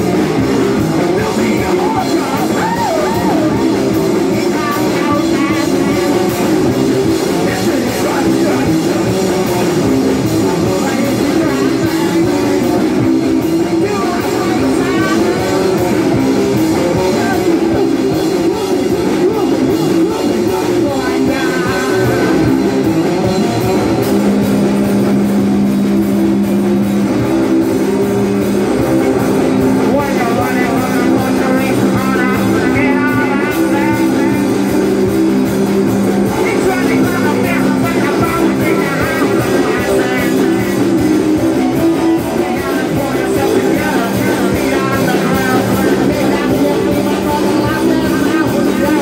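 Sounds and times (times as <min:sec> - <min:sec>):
person singing: 0:00.0 - 0:24.6, 0:28.6 - 0:49.0
bass guitar: 0:00.0 - 0:49.0
drum kit: 0:00.0 - 0:49.0
electric guitar: 0:00.0 - 0:49.0.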